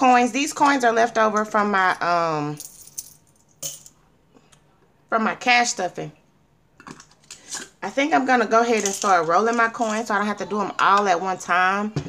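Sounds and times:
coins clinking in hand: 0:02.6 - 0:04.0.

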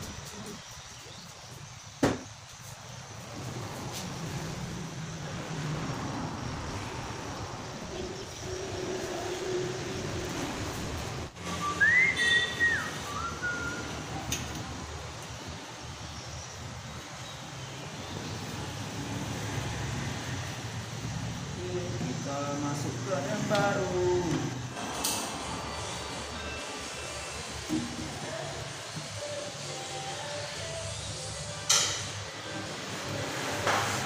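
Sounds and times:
whistle rising and dropping: 0:11.4 - 0:13.9.

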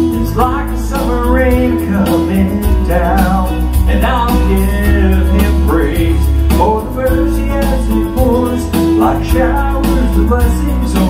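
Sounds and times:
country guitar and bass accompaniment: 0:00.0 - 0:11.0
man singing into a microphone: 0:00.0 - 0:11.0.

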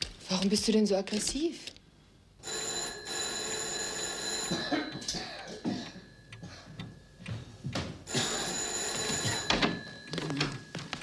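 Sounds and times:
telephone ringing: 0:02.4 - 0:07.2, 0:08.0 - 0:11.0.

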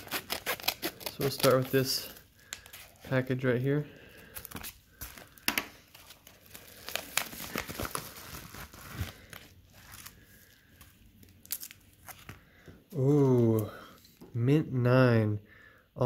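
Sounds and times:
paper mailer crinkling: 0:00.0 - 0:03.2, 0:04.4 - 0:10.2.

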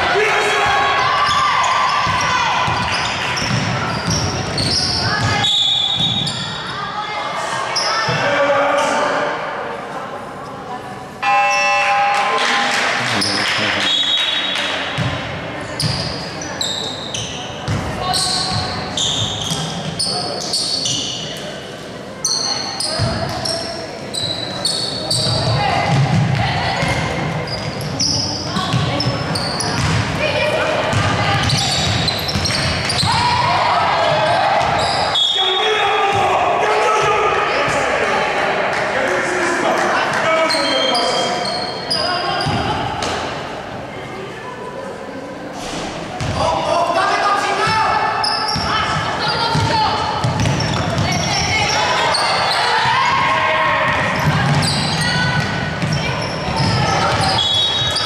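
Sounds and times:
people calling out: 0:11.2 - 0:14.6
basketball bouncing on hardwood floor: 0:29.8 - 0:30.0, 0:49.5 - 0:51.1.

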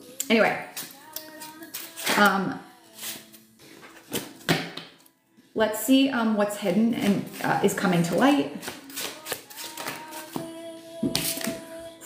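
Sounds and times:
soft background music: 0:00.0 - 0:12.0
cards being shuffled: 0:03.0 - 0:04.9, 0:08.6 - 0:10.4.

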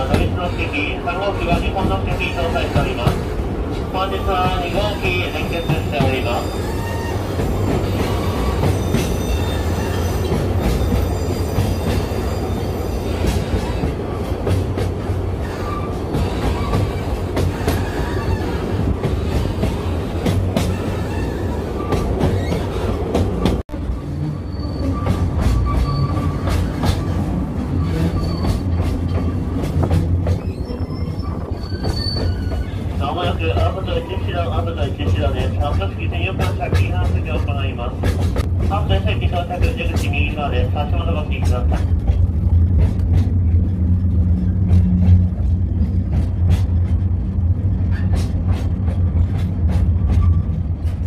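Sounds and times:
rail clicks: 0:00.0 - 0:51.0
train wheels rumbling on rails: 0:00.0 - 0:51.0
wheel squeals: 0:05.5 - 0:13.8, 0:24.0 - 0:29.4, 0:30.3 - 0:32.9.

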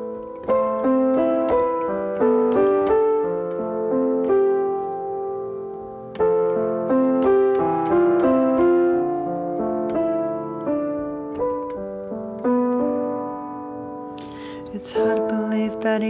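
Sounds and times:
electronic keyboard piano chords: 0:00.0 - 0:16.0.

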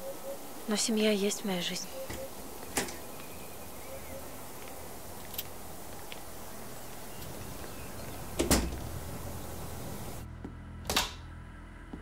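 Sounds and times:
background hiss: 0:00.0 - 0:10.3
door opening and shutting: 0:02.1 - 0:03.1, 0:07.2 - 0:09.2.

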